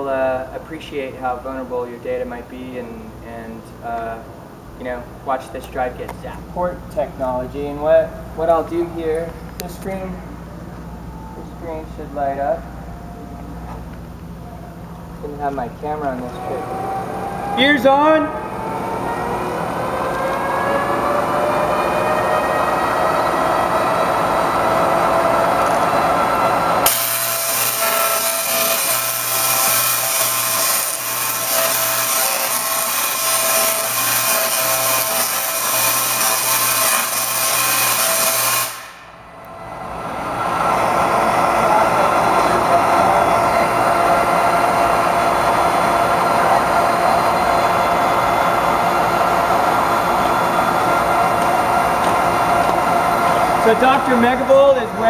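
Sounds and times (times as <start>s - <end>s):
steady machine whine: 0.0s - 55.0s
crackling electric arc buzz: 16.3s - 42.7s.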